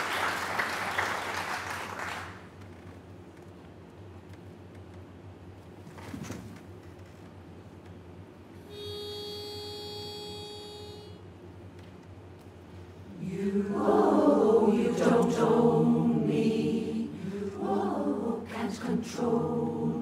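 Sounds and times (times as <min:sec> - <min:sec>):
pitch pipe note: 0:08.6 - 0:11.2
women's chorus singing a cappella: 0:13.1 - 0:20.0.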